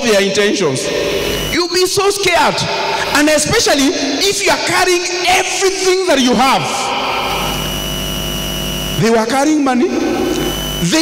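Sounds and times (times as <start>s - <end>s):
faint high steady whine: 0.0s - 11.0s
sound system hiss and hum: 0.0s - 11.0s.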